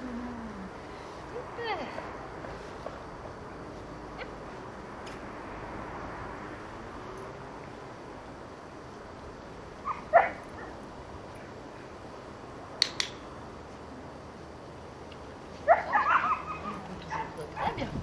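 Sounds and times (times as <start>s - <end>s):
dog yipping: 15.7s - 17.8s.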